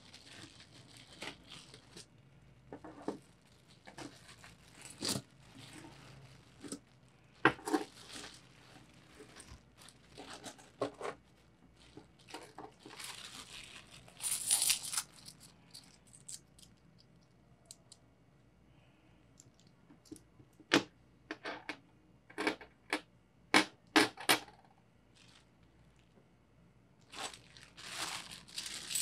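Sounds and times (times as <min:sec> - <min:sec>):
plastic bag crinkling: 0:00.0 - 0:16.8, 0:25.2 - 0:26.1, 0:27.0 - 0:29.0.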